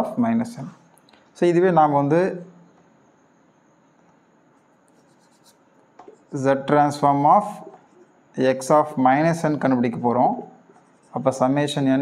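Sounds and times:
marker writing on whiteboard: 0:04.6 - 0:06.4, 0:07.4 - 0:08.2, 0:10.6 - 0:11.4.

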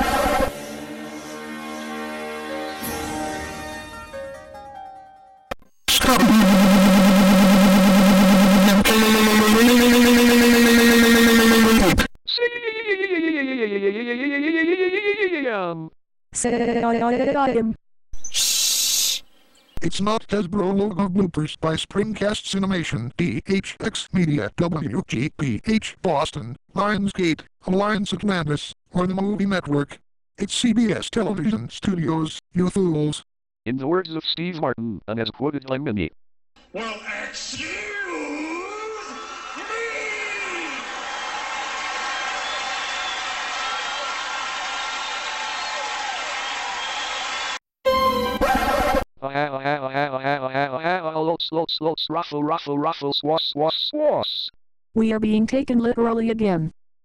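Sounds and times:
synthesized voice speaking: 0:05.9 - 0:14.5, 0:30.7 - 0:40.6, 0:48.5 - 0:54.6
cartoon steam hiss: 0:18.4 - 0:19.2
person shouting: 0:37.6 - 0:40.8
audience applauding and cheering: 0:39.1 - 0:48.1.

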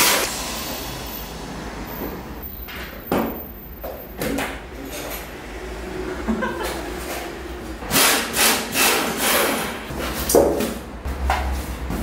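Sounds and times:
pneumatic tool bursts: 0:00.0 - 0:02.1, 0:07.9 - 0:09.8.

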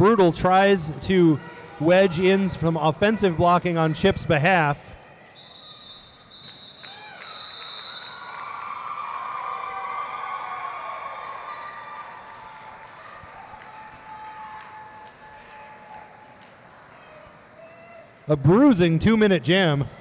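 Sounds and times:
crowd cheering and chatter: 0:00.0 - 0:20.0
referee's whistle blasts: 0:05.4 - 0:08.3.

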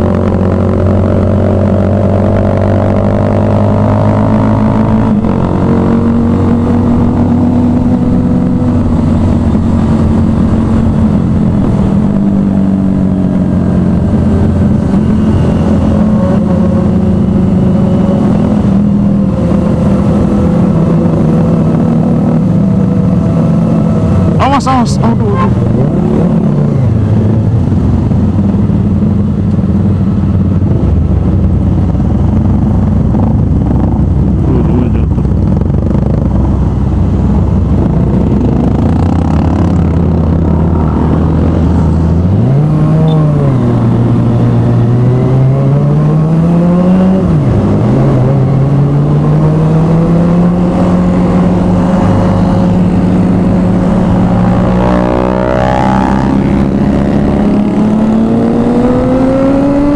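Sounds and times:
motorcycle engine revving: 0:00.0 - 0:59.9.

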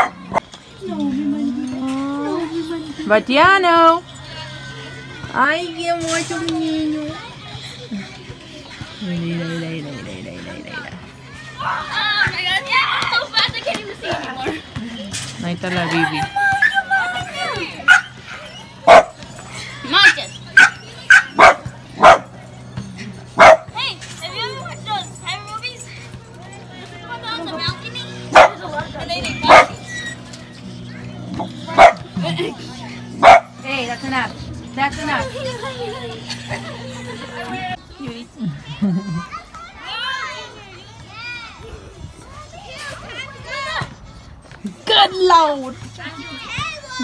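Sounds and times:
children calling and squealing: 0:00.0 - 0:47.0
dog barking: 0:17.9 - 0:18.1, 0:18.8 - 0:19.2, 0:20.0 - 0:22.3, 0:23.4 - 0:23.7, 0:28.3 - 0:28.6, 0:29.4 - 0:29.8, 0:31.7 - 0:32.1, 0:33.2 - 0:33.5.

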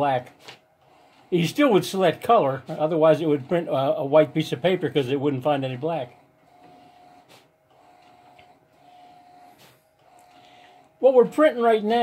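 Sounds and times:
printer carriage whining: 0:00.0 - 0:12.0.

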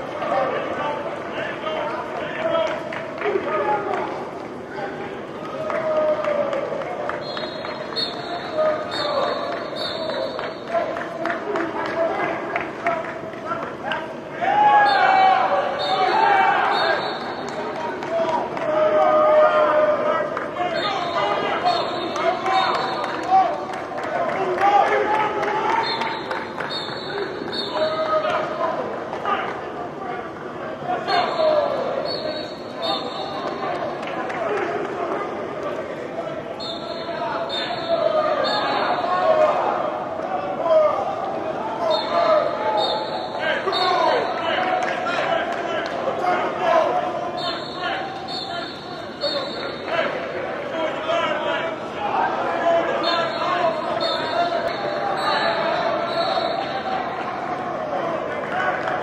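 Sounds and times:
people shouting in echoing hall: 0:00.0 - 0:59.0.

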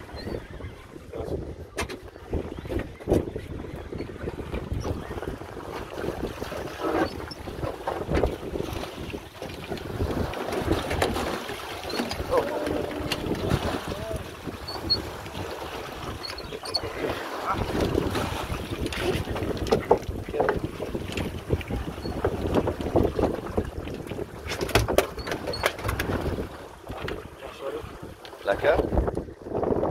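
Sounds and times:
sea wash: 0:00.0 - 0:29.9
wind buffeting microphone: 0:00.0 - 0:29.9.

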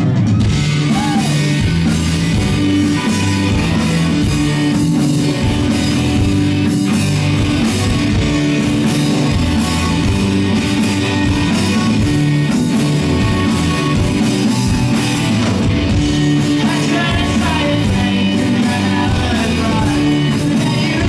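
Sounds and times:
live rock band playing: 0:00.0 - 0:21.0.

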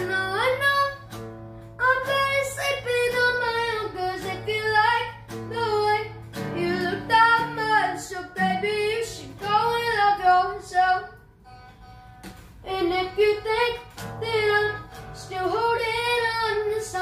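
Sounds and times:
acoustic guitar: 0:00.0 - 0:17.0.

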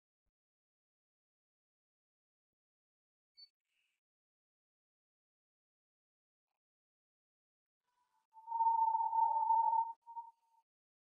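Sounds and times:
fainter lower tones: 0:08.0 - 0:10.6
steady high-pitched tone: 0:08.4 - 0:10.4.

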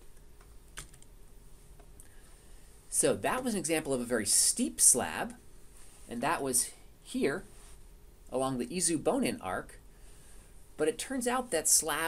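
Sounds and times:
computer clicks: 0:00.2 - 0:01.1.

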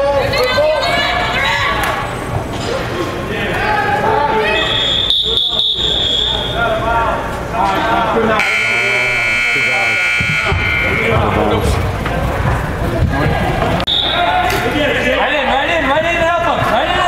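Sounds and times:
referee's whistle blowing: 0:04.5 - 0:06.6, 0:08.4 - 0:11.2, 0:13.9 - 0:14.4
scoreboard buzzer: 0:08.4 - 0:11.4.

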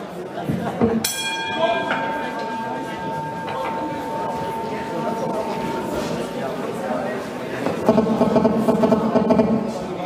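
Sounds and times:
boxing ring bell ringing: 0:01.0 - 0:07.0.

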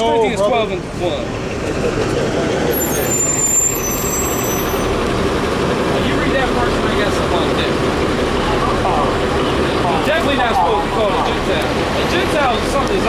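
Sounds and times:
bus engine running: 0:00.0 - 0:13.0
high thin squeal: 0:02.7 - 0:05.0.

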